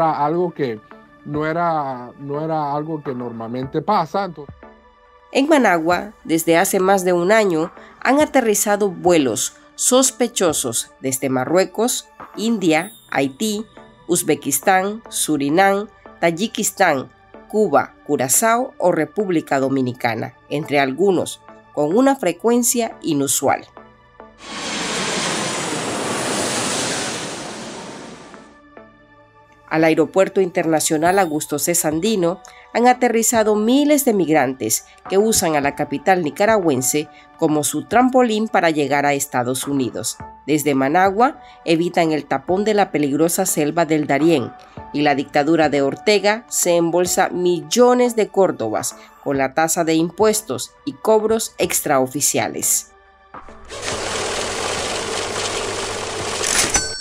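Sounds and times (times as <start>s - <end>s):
rushing whoosh: 24.4s - 28.6s
whirring rattling machine: 53.7s - 56.7s.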